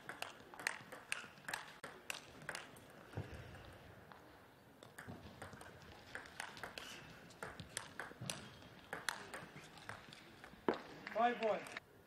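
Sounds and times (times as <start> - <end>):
table tennis ball clicking: 4.8 - 10.6.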